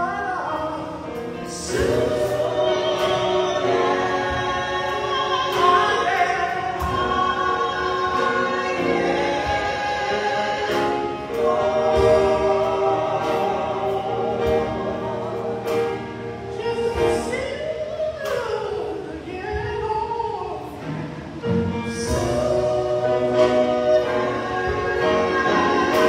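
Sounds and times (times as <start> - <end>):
women singing gospel: 0.0 - 26.0
drums and keyboard: 1.7 - 18.5.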